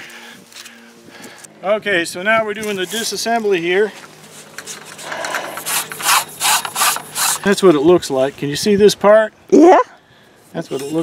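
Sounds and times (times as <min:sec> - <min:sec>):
metal pipe scraping rub: 0:04.2 - 0:07.6, 0:10.6 - 0:11.0.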